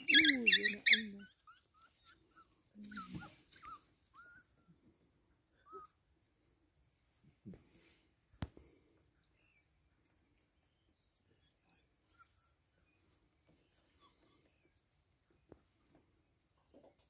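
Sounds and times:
dog pups squeaking and chirping: 0.0s - 7.4s, 9.2s - 17.0s.

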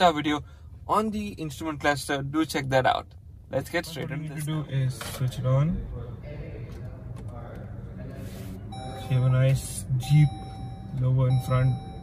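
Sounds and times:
car electronic chime: 8.7s - 12.0s.

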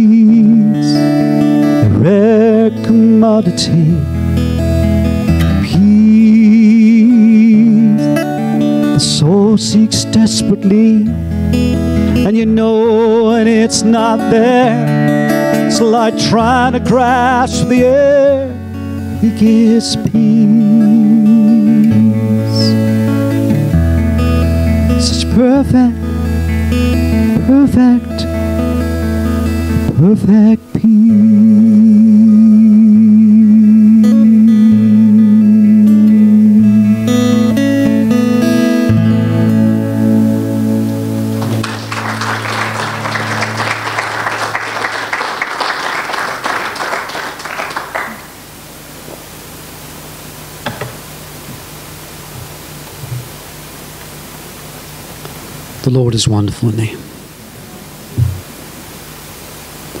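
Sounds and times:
acoustic guitar chord: 0.0s - 48.9s
sound system hiss: 0.0s - 60.0s
man singing long note: 1.8s - 4.1s, 5.6s - 11.2s, 12.2s - 23.2s, 25.0s - 26.1s, 27.3s - 28.4s, 29.8s - 37.2s
short low hum: 57.0s - 60.0s.

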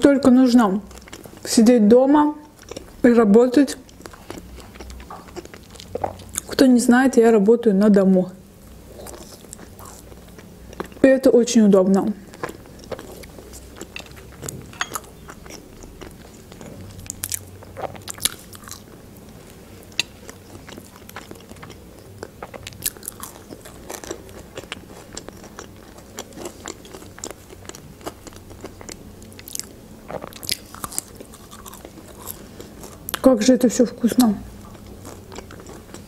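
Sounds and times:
chewing crisp fries: 0.8s - 1.6s, 2.4s - 3.1s, 3.7s - 6.6s, 8.7s - 11.1s, 12.3s - 36.0s.

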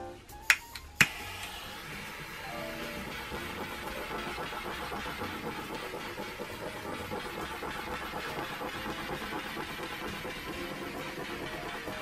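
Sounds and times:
torch igniter clicking: 0.4s - 1.7s
torch flame hissing: 0.9s - 12.0s.

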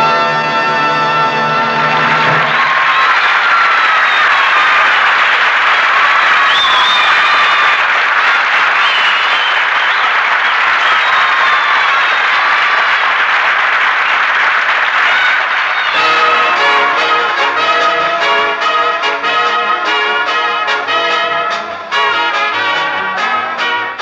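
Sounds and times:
audience applauding: 1.7s - 24.0s.

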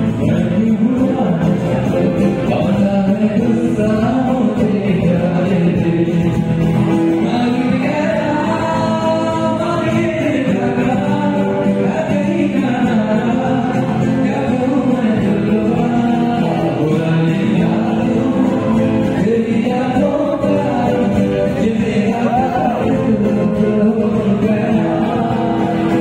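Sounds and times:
electric and acoustic guitars: 0.0s - 26.0s
keyboard: 0.0s - 26.0s
male vocals singing: 0.0s - 26.0s.

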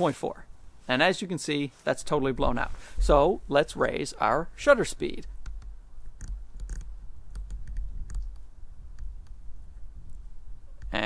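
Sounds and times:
low rumble on microphone: 2.2s - 3.5s, 5.2s - 11.0s.

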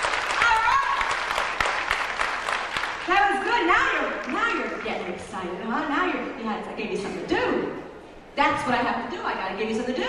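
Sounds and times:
woman talking into a microphone: 3.1s - 10.0s.

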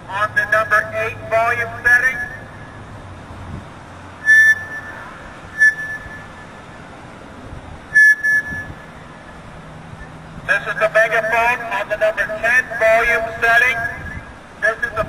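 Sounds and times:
low background noise: 0.0s - 15.0s
megaphone whistle tones: 4.2s - 6.6s, 8.0s - 8.9s.

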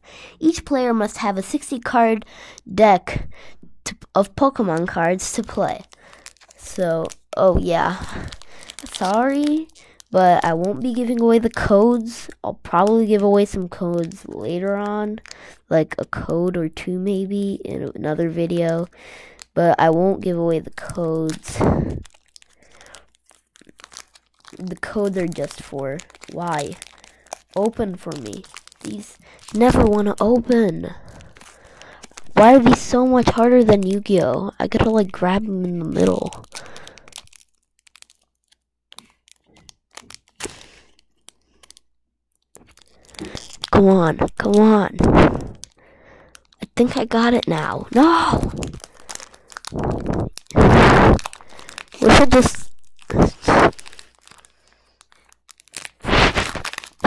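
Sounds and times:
foil card pack crinkling: 4.2s - 15.5s, 18.2s - 57.0s.

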